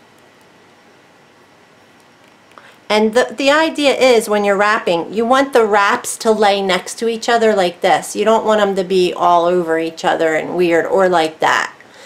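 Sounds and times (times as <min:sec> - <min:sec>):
background hiss: 0:00.0 - 0:09.2.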